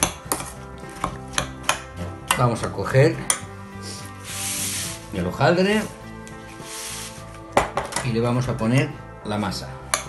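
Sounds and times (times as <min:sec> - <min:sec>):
background music: 0:00.0 - 0:10.0
baking paper rustling: 0:04.2 - 0:07.4.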